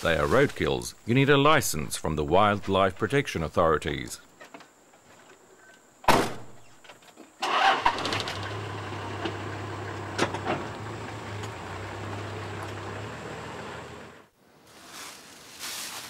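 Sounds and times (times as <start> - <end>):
engine starting and idling: 7.4 - 14.3.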